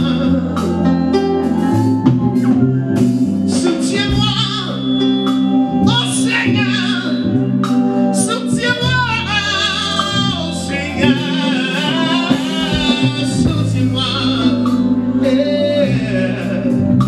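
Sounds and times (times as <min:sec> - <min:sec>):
man singing into microphone: 0:00.0 - 0:01.6, 0:03.5 - 0:05.2, 0:05.8 - 0:07.4, 0:08.1 - 0:17.0
electronic keyboard chords: 0:00.0 - 0:17.0.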